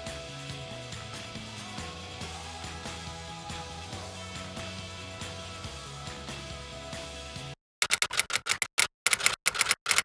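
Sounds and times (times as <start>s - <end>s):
background music: 0.0s - 7.6s.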